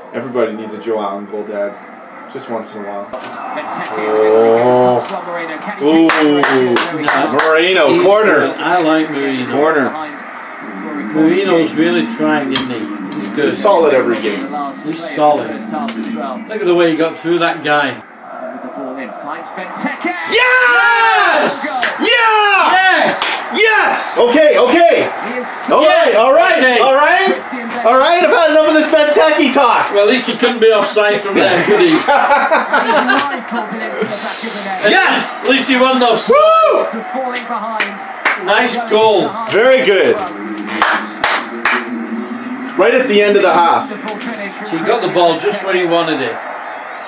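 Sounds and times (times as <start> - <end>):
louder talk: 2.4 - 41.6, 42.7 - 46.7
hand claps: 5.0 - 7.5, 23.2 - 23.4, 37.3 - 38.5, 40.6 - 41.9.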